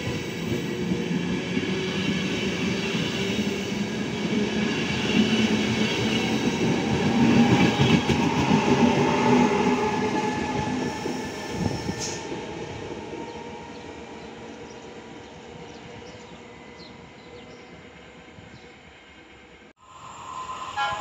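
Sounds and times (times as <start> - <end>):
train wheels rumbling on rails: 0.0 - 18.7.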